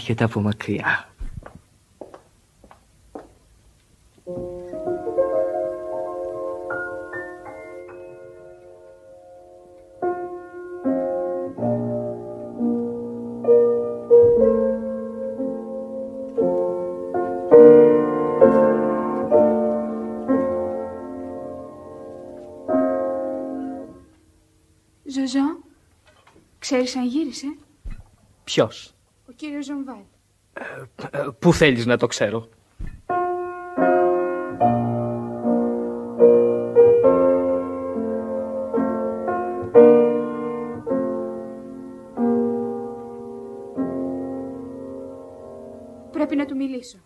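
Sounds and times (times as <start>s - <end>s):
soft slow keyboard tune: 4.2s - 24.9s, 33.1s - 46.2s
piano playing slow chords: 4.3s - 25.0s, 33.1s - 46.6s
faint knocks: 27.8s - 28.3s, 32.6s - 33.2s.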